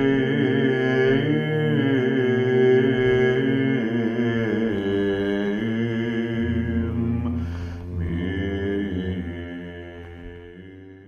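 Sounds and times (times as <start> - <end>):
low drone: 0.0 - 11.0
slow vocal chant: 0.0 - 11.0.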